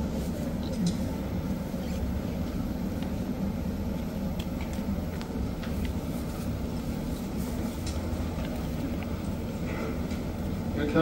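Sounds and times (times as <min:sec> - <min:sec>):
low rumble of hall: 0:00.0 - 0:11.0.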